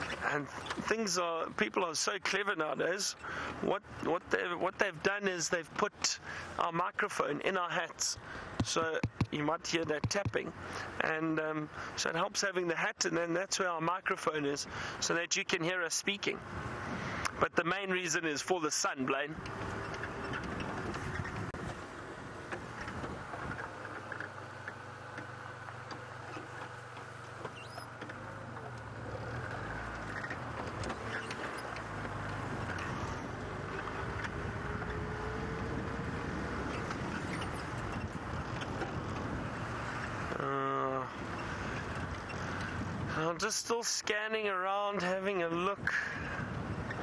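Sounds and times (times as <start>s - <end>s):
tyre and body rattle: 8.5s - 10.5s.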